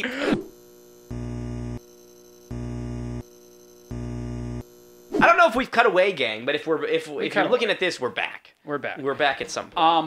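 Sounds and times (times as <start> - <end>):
faint steady tone: 0.6 - 5.2.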